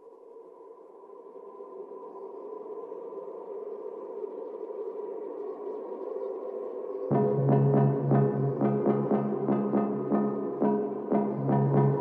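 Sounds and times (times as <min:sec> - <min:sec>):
synth pad drone: 0:07.1 - 0:12.0.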